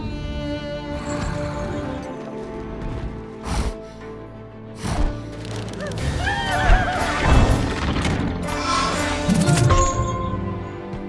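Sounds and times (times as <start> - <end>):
orchestral film score: 0.0 - 11.0.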